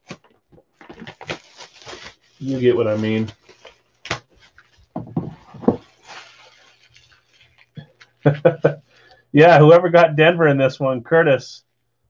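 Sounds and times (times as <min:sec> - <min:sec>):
plastic wrap rustling: 0:00.0 - 0:09.3.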